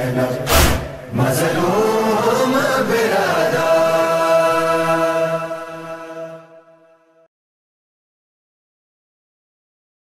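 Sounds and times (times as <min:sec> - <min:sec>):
voices chanting a lament: 0:00.0 - 0:07.0
sharp chest slap: 0:00.5 - 0:01.0.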